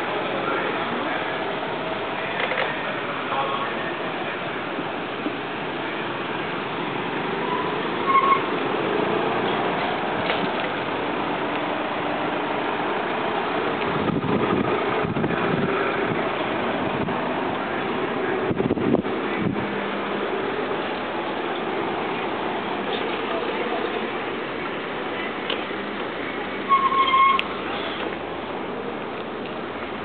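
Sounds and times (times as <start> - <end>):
cars driving past: 0.0 - 30.0.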